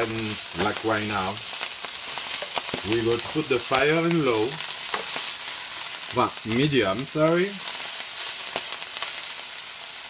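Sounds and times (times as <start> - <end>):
greens sizzling in oil: 0.0 - 10.0.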